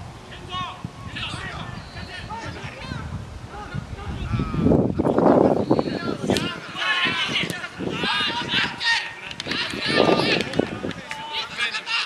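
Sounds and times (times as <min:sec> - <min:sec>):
people talking outdoors: 0:00.0 - 0:12.0.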